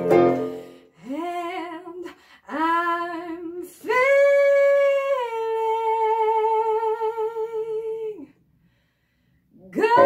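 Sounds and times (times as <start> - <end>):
woman singing long note: 9.8 - 10.0.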